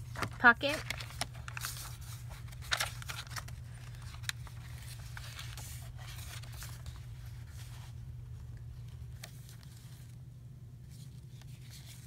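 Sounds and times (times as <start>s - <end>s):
paper crinkling and rustling: 0.0s - 10.2s, 10.8s - 12.0s
steady low hum: 0.0s - 12.0s.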